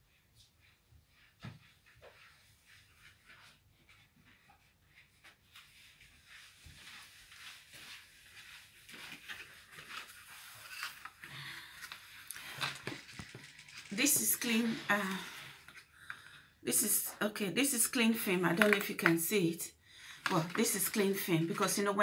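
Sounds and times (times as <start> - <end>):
rustling: 0.6 - 15.9.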